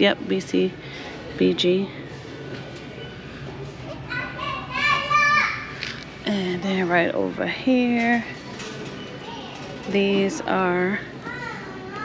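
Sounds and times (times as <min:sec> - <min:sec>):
background room noise: 0:00.0 - 0:12.0.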